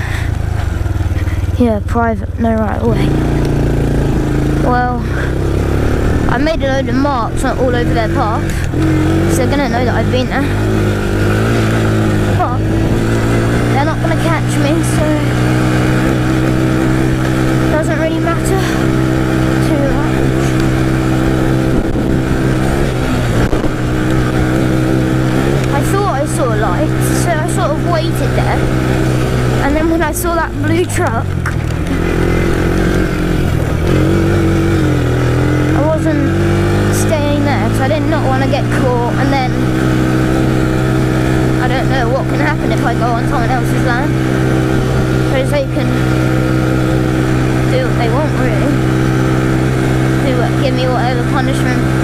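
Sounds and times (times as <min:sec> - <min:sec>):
quad bike engine running: 0:00.0 - 0:52.0.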